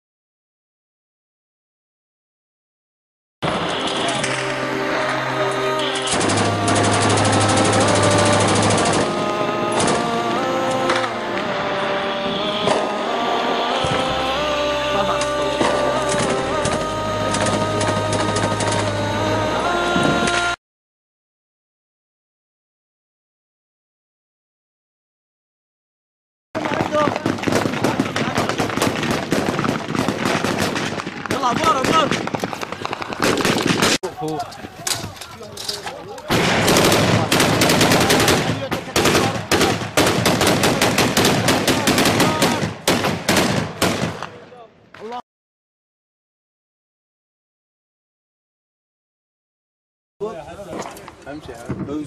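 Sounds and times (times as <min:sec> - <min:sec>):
background music: 0:03.4 - 0:20.6
machine gun firing bursts: 0:06.0 - 0:09.2, 0:26.6 - 0:34.0, 0:36.3 - 0:44.2.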